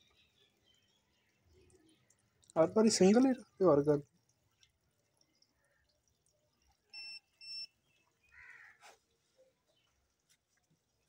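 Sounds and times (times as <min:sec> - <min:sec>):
short electronic beeps: 0:06.9 - 0:07.7.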